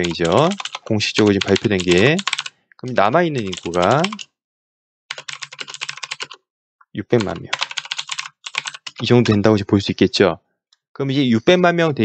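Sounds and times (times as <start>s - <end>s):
typing on computer keyboard: 0.0s - 4.3s, 5.1s - 6.4s, 7.1s - 9.4s.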